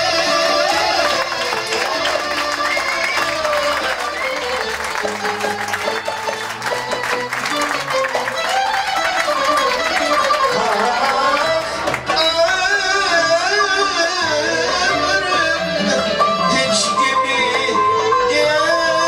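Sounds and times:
clarinet melody: 0.0 - 11.8, 12.7 - 19.0
violin melody: 0.0 - 19.0
plucked strings: 3.8 - 12.8.

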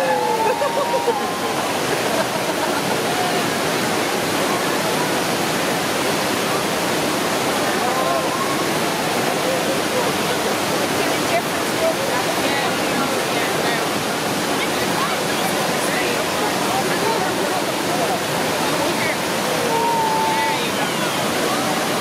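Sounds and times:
water rushing over a weir: 0.0 - 22.0.

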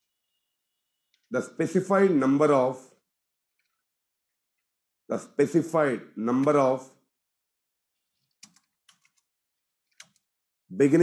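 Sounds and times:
faint keyboard keystrokes: 8.2 - 9.3, 9.9 - 10.3.

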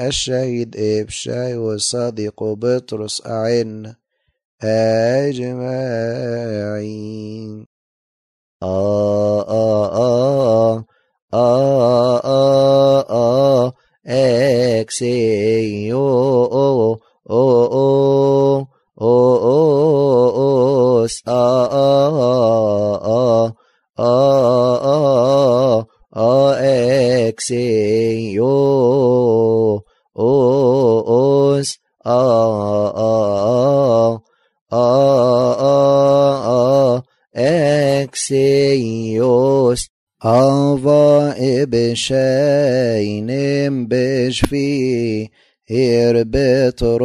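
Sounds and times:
person chanting a hymn: 8.6 - 10.8, 11.4 - 34.2, 34.8 - 47.0.

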